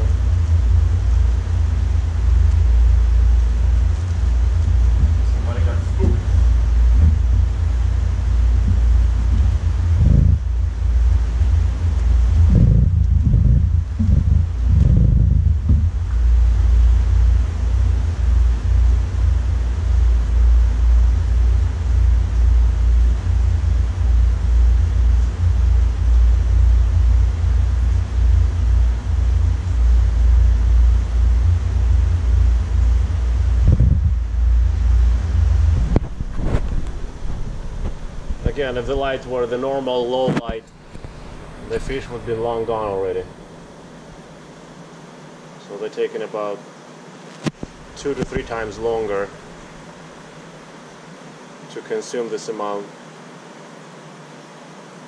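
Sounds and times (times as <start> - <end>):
aquarium water and aeration rumble: 0.0 - 55.0.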